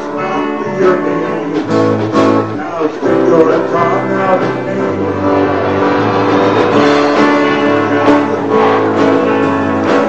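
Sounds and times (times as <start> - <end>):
song accompaniment: 0.0 - 10.0.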